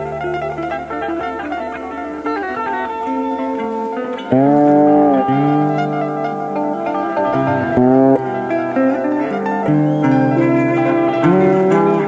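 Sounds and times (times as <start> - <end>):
improvised rock jam: 0.0 - 12.0.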